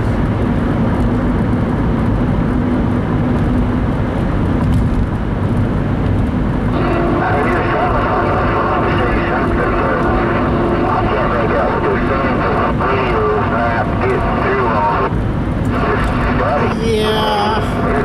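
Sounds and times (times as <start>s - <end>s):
car road and engine noise: 0.0s - 18.0s
garbled radio voices: 6.8s - 18.0s
radio tones: 6.8s - 18.0s.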